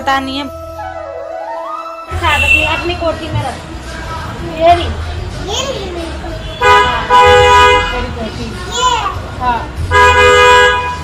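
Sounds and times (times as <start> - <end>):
two-tone vehicle horn honk: 2.1 - 3.0, 6.4 - 8.0, 9.9 - 11.0.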